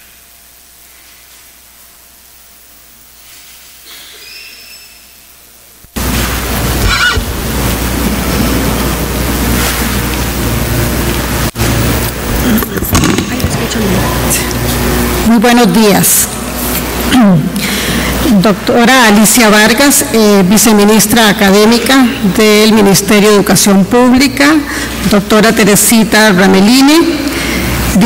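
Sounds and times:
low electrical hum: 0.0s - 28.0s
loud steady rushing noise: 5.9s - 21.0s.

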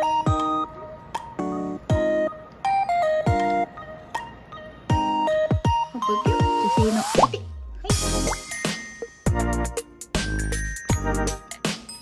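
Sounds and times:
playful background music: 0.0s - 12.0s
cartoonish plopping sound effects: 7.1s - 8.4s.

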